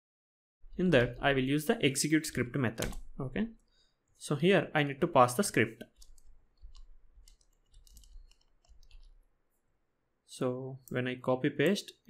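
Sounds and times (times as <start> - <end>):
keyboard and mouse clicking: 2.8 - 3.1, 5.8 - 9.2.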